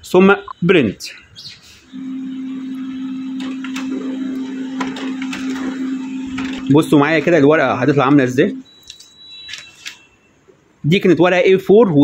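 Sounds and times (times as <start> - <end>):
laser printer motor humming: 1.9 - 8.7
paper feed clicks: 3.2 - 7.4.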